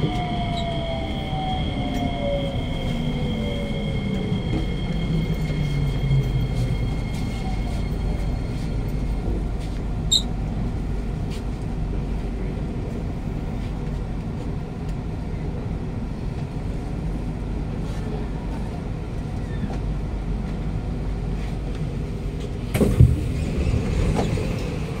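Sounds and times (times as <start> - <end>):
low hum inside train carriage: 0.0 - 25.0
station platform noise: 0.0 - 25.0.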